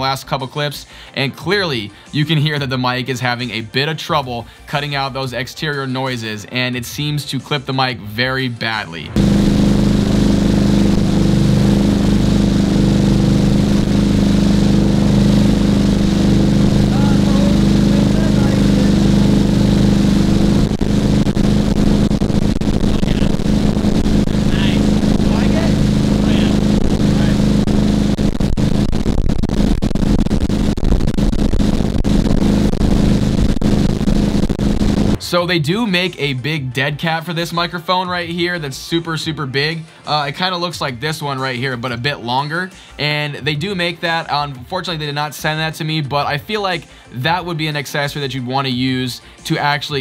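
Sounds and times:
boat engine running: 9.2s - 35.2s.

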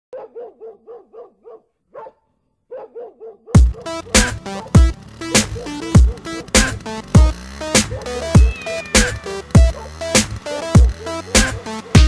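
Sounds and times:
short dog barks: 0.1s - 3.6s
electronic music track: 3.6s - 12.0s.

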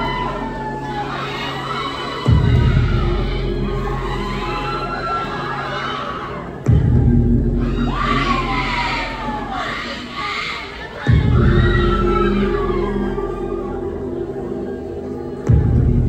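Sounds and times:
audience shouting and screaming: 0.0s - 16.0s
deep bass hit: 2.3s - 4.8s, 6.6s - 9.6s, 11.1s - 13.2s, 15.5s - 16.0s.

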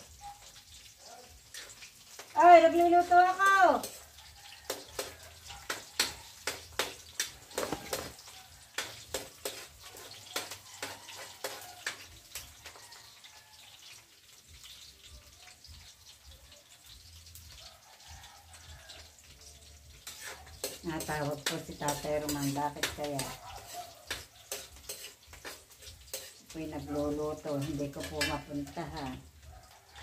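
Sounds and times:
light sizzling: 0.0s - 30.0s
metal spatula scraping a wok: 1.4s - 2.3s, 3.7s - 12.8s, 19.0s - 30.0s.

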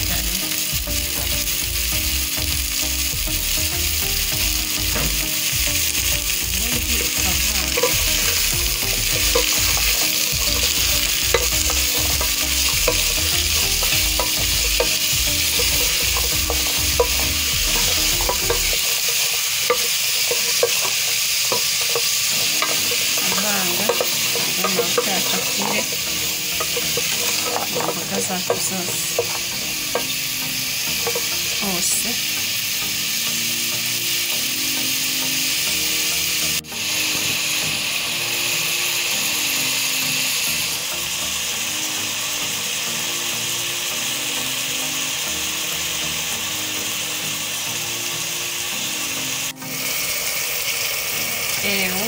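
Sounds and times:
vegetables sizzling in a pot: 0.0s - 52.0s
wooden spoon scraping a pot: 7.0s - 30.2s.

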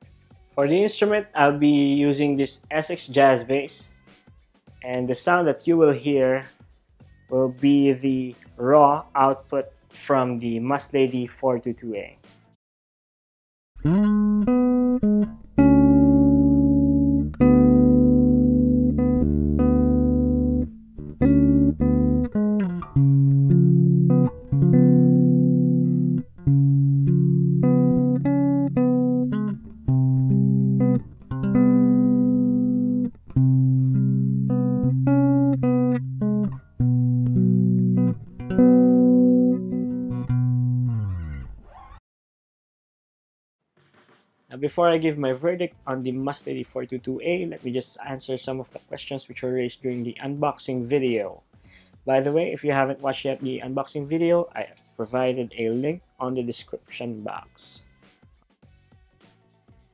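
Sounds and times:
electric bass plucked notes: 13.8s - 41.6s.

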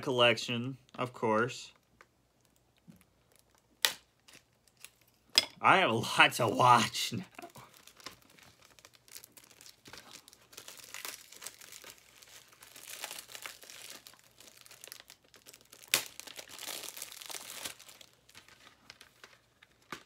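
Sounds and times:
plastic shrink wrap crinkling: 1.8s - 5.3s, 7.3s - 20.0s
sharp plastic snap: 3.8s - 4.4s.

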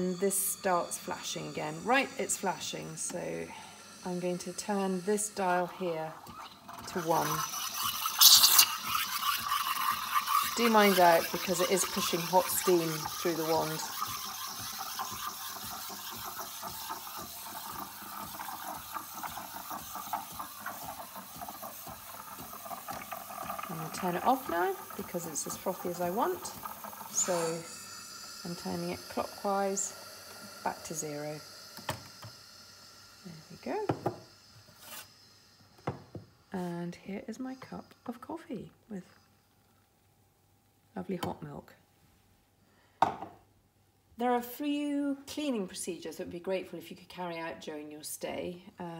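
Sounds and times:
steam wand frothing milk: 0.0s - 39.2s
metal jug set down on worktop: 43.0s - 43.4s.

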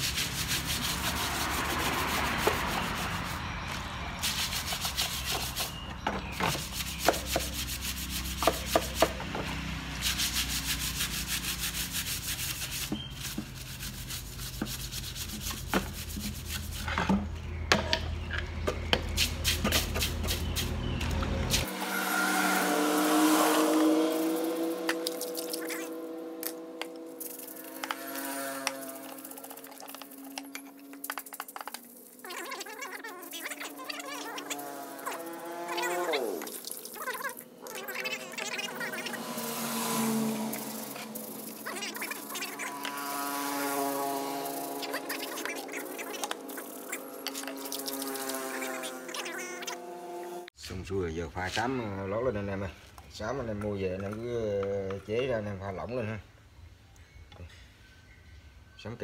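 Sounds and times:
brush scrubbing metal: 0.0s - 3.4s, 4.2s - 9.2s, 9.9s - 17.3s, 21.5s - 49.8s.

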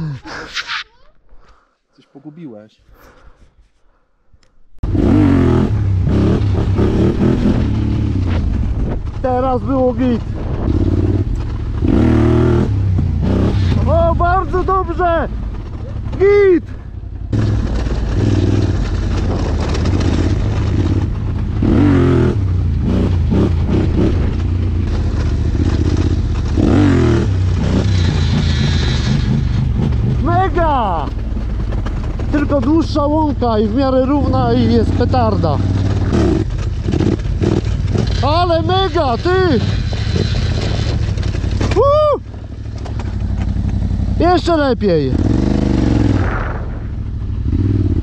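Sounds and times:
quad engine revving: 4.8s - 8.6s, 9.2s - 16.5s, 17.3s - 42.0s, 42.7s - 48.0s
person shouting: 41.7s - 42.3s.

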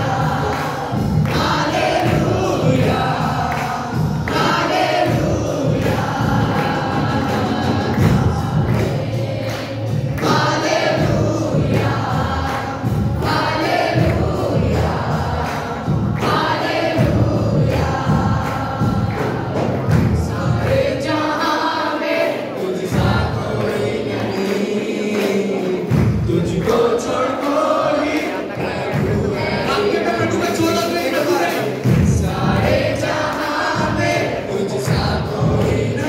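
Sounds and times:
congregation singing over loudspeaker: 0.0s - 36.0s
musical accompaniment and percussion: 0.0s - 36.0s.

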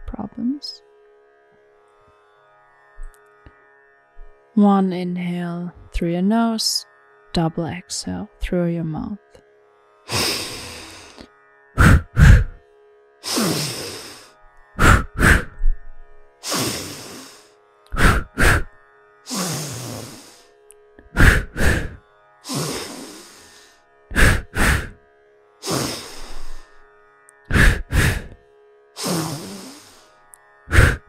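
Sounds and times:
forceful exhales through mouth: 10.1s - 12.6s, 13.2s - 15.6s, 16.4s - 18.7s, 19.3s - 20.4s, 21.2s - 25.0s, 25.6s - 26.7s, 27.5s - 28.4s, 29.0s - 30.1s, 30.7s - 31.0s
strong inhale through nose: 10.1s - 12.6s, 13.2s - 15.6s, 16.4s - 18.7s, 19.3s - 20.5s, 21.2s - 25.0s, 25.6s - 26.8s, 27.5s - 28.4s, 29.0s - 30.1s, 30.7s - 31.0s.

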